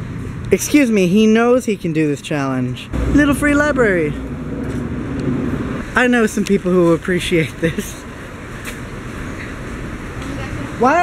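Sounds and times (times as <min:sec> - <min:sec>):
car going by: 0:02.9 - 0:11.0.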